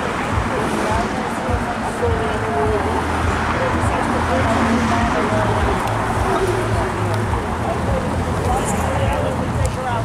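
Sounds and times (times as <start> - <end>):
people talking indistinctly: 0.0 - 10.0.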